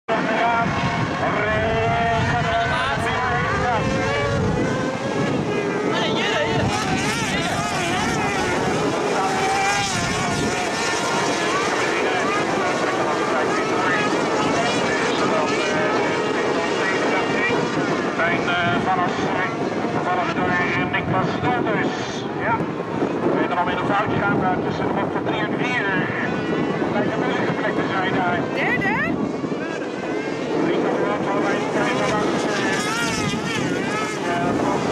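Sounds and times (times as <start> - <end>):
racing buggy engines revving: 0.1 - 21.1, 28.5 - 34.9.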